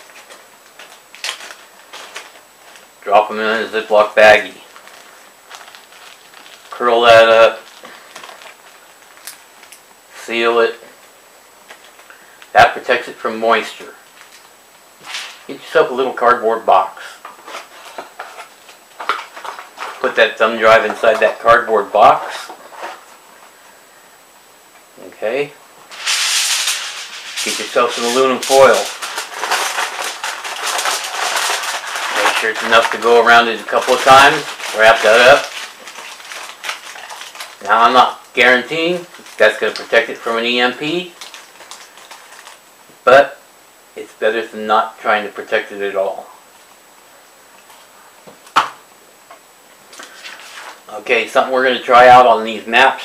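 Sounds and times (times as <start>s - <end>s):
aluminum foil crinkling: 0.0s - 2.9s, 4.2s - 9.8s, 14.1s - 15.5s, 17.3s - 21.4s, 25.9s - 42.6s, 49.9s - 50.8s
paper rustling: 0.0s - 2.9s, 4.7s - 6.9s, 17.2s - 21.4s, 22.1s - 23.2s, 25.9s - 42.6s, 50.0s - 50.8s.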